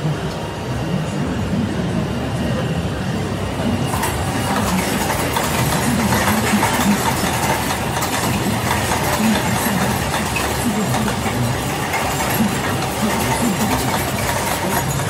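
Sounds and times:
production line mechanical clatter: 0.0s - 15.0s.

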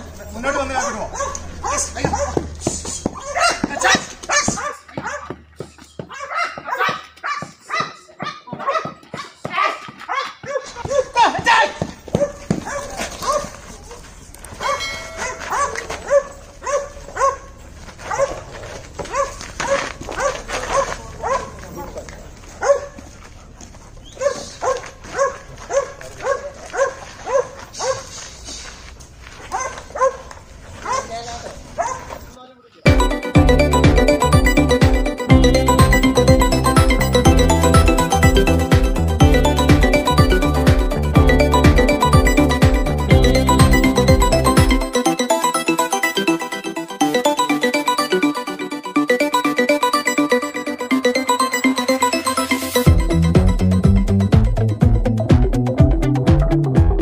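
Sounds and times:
dog barking: 0.8s - 2.6s, 3.2s - 5.4s, 6.1s - 13.6s, 14.6s - 22.0s, 22.6s - 23.0s, 24.1s - 28.2s, 29.5s - 32.2s.

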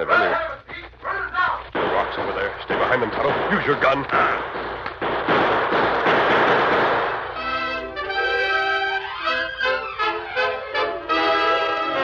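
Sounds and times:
rapid volley of gunshots: 1.7s - 7.9s.

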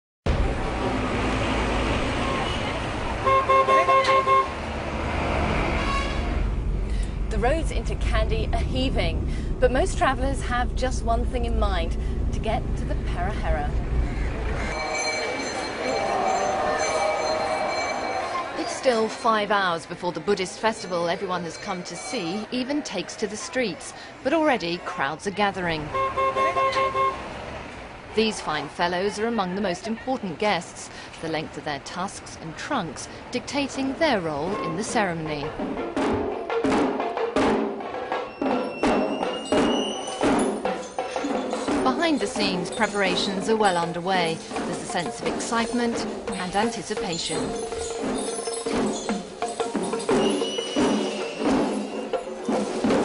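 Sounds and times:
street traffic noise: 0.3s - 53.0s
vehicle horn tooting: 2.2s - 4.5s, 5.8s - 6.4s, 25.9s - 27.2s.

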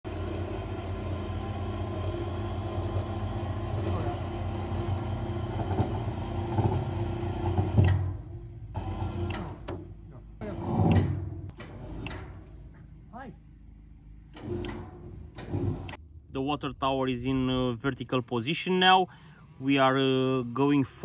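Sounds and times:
lifting equipment engine running: 0.0s - 12.7s.

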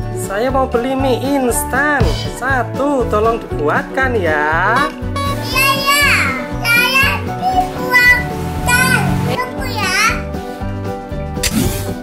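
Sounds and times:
music with repeating bass line: 4.1s - 10.0s
young child talking: 4.8s - 10.3s.

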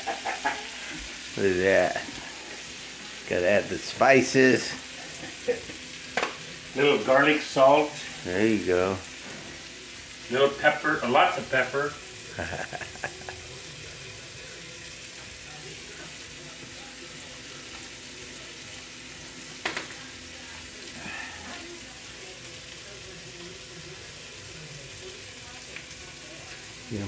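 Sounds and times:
shrimp sizzling in a skillet: 0.0s - 27.0s.

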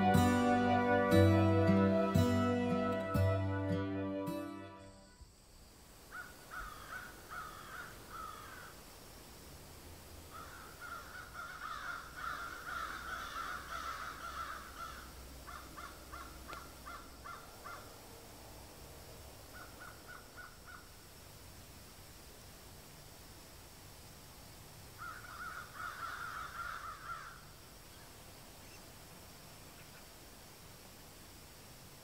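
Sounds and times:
crows calling: 6.1s - 8.8s, 10.3s - 17.9s, 19.5s - 20.9s, 25.0s - 27.5s.

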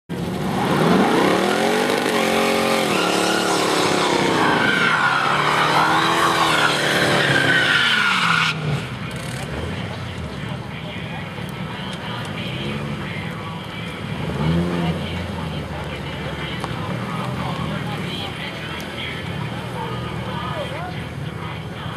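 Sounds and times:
engine revving: 0.1s - 7.6s, 14.1s - 18.2s
tyres squealing: 0.7s - 9.5s.

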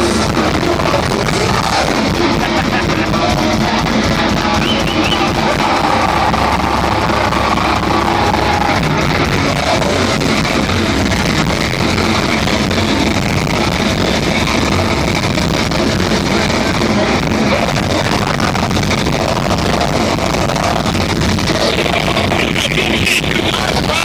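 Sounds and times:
heavy metal band playing live: 0.0s - 24.0s.

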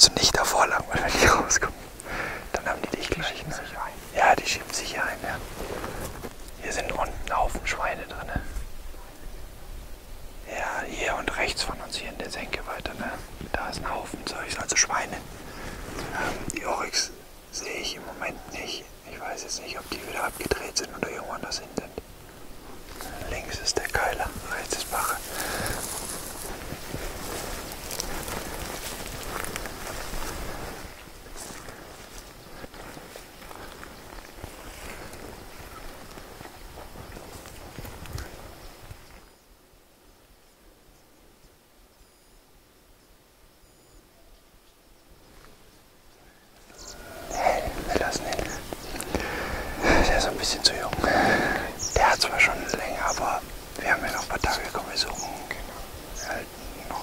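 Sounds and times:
people whispering: 0.0s - 9.8s, 10.4s - 38.5s, 46.6s - 57.0s
faint outdoor hiss: 0.0s - 57.0s.

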